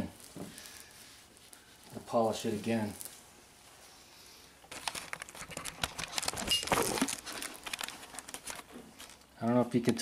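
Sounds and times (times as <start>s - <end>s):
rustling and crinkling handling noise: 0.0s - 10.0s.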